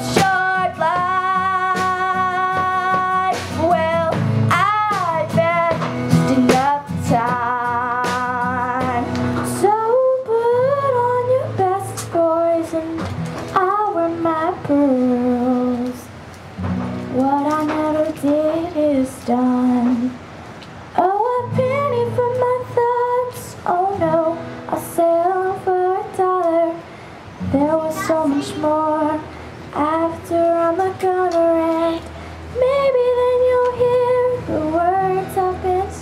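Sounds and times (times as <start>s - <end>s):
girl singing country ballad: 0.0s - 20.3s, 20.9s - 36.0s
strummed acoustic guitar: 0.0s - 36.0s.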